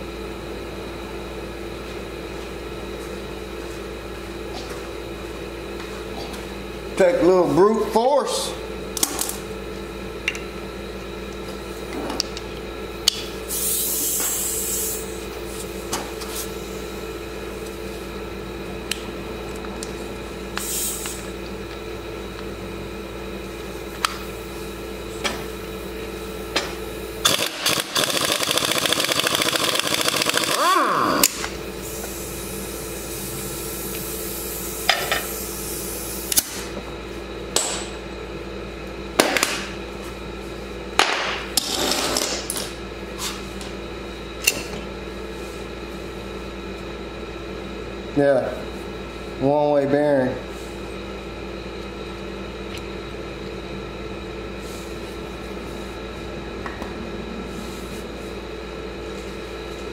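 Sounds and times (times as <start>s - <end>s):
steady hum: 0.0s - 59.9s
impact wrench hammering: 26.6s - 31.5s, 37.6s - 37.9s.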